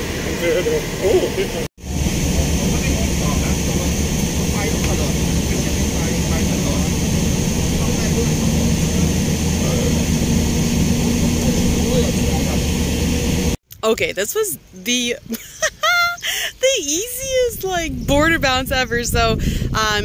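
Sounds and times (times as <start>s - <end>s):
bus engine running: 0.0s - 13.6s
road noise: 0.0s - 20.0s.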